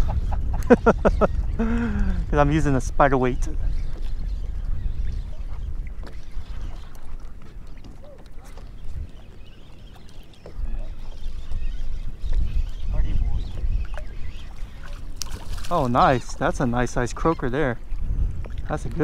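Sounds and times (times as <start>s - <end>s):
wind rumbling on microphone: 0.0s - 19.0s.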